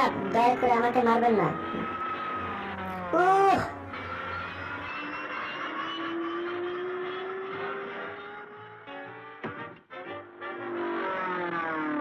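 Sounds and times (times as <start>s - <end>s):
cartoon propeller airplane engine: 0.0s - 4.9s.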